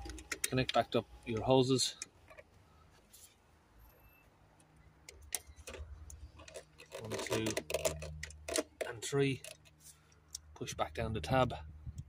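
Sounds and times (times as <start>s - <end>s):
plastic connectors clicking: 5.0s - 10.5s.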